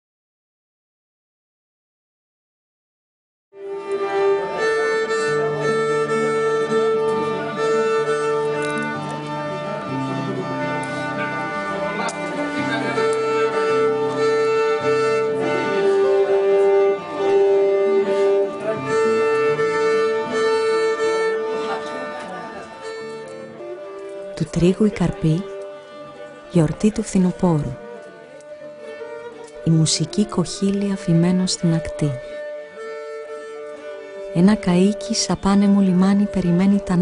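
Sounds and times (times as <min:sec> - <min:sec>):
bowed string melody: 0:03.6 - 0:37.0
slow lower instrumental line: 0:03.6 - 0:37.0.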